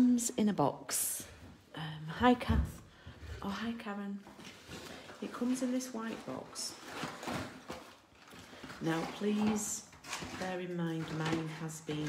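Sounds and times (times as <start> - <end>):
plastic packaging crinkling: 4.4 - 12.0.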